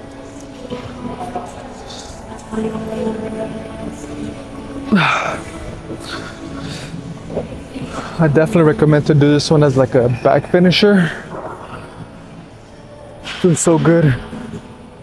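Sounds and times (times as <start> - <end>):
background music with held tones: 0.0 - 15.0.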